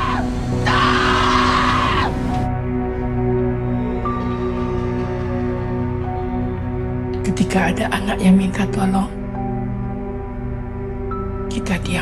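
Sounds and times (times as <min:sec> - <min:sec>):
dark trailer music: 0:00.0 - 0:12.0.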